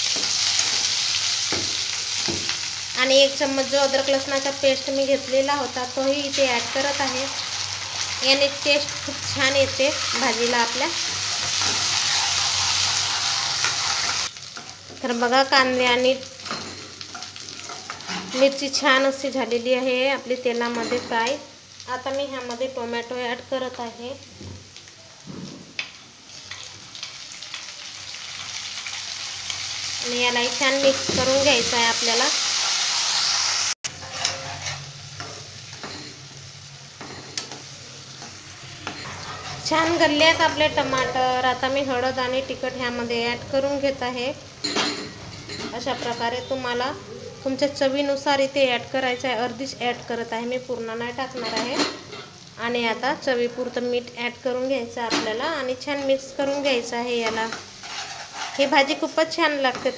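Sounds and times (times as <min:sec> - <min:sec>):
onions sizzling in oil: 0:00.0 - 0:59.9
metal spatula scraping pan: 0:16.4 - 0:18.6, 0:33.9 - 0:36.2, 0:38.2 - 0:41.2, 0:57.2 - 0:59.0
dishware clinking against pan: 0:20.7 - 0:21.3, 0:38.8 - 0:39.6, 0:44.6 - 0:46.3, 0:51.3 - 0:52.4.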